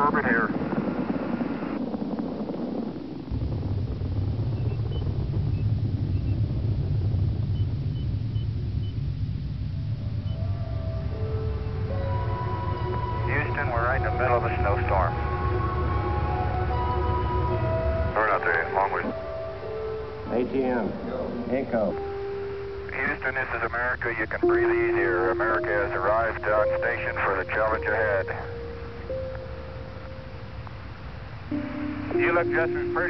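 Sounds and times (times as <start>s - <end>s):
radio voices: 0.0s - 0.6s, 12.8s - 15.2s, 18.0s - 19.4s, 22.9s - 29.0s, 31.5s - 33.0s
low steady rumble: 0.0s - 33.0s
sustained music-like tones: 9.8s - 33.0s.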